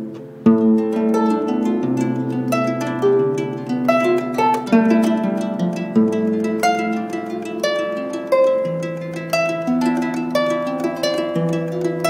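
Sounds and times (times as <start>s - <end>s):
harp plucked notes: 0.0s - 12.0s.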